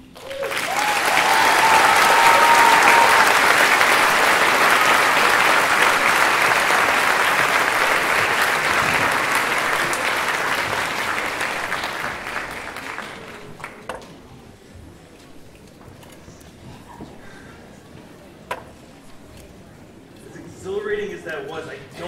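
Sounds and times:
audience applause: 0.0s - 14.0s.

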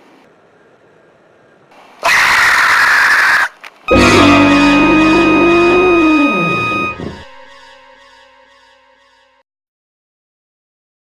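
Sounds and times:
loud harsh shriek: 2.1s - 7.7s
music: 3.9s - 9.4s.

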